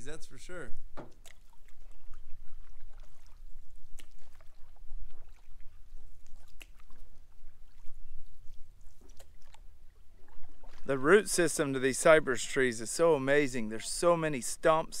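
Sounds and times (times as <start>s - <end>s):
paddle splashing water: 0.8s - 15.0s
paddle knocks against canoe: 0.9s - 1.4s.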